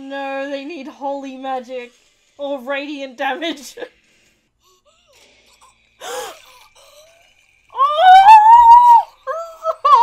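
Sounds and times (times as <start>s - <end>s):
high drawn-out scream: 7.8s - 9.2s.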